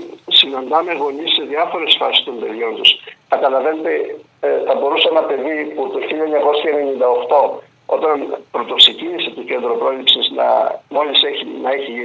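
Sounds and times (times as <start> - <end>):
voice over telephone line: 0.0 - 12.0.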